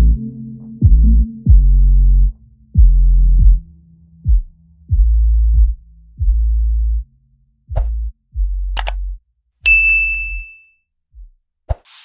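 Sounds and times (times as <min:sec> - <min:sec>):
bell-like notification ding: 0:09.7 - 0:10.7.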